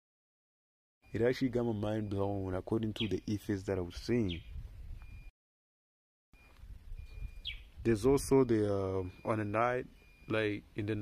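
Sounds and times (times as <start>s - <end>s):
bird chirp: 1.0s - 5.3s, 6.4s - 11.0s
faint outdoor background noise: 1.0s - 5.3s, 6.4s - 11.0s.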